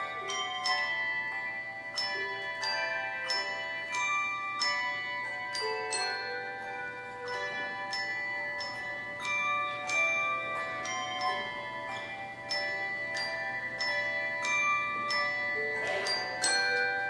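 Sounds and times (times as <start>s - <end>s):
handbell choir ringing: 0.0s - 17.0s.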